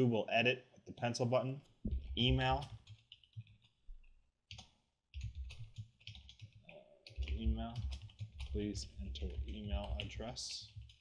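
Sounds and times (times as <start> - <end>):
computer keyboard tapping: 1.9 - 11.0.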